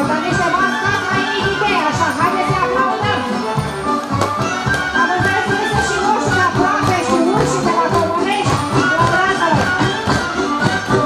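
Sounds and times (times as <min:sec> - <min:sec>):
folk music with steady beat: 0:00.0 - 0:11.0.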